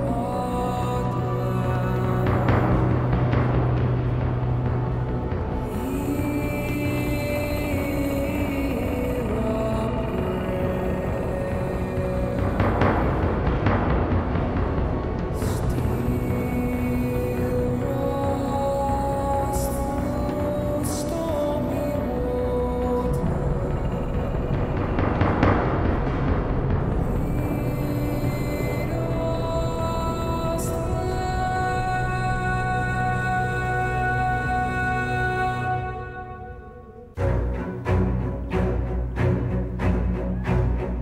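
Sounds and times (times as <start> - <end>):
drums rumbling with mallets: 0.0 - 34.4
sustained musical backing: 0.0 - 41.0.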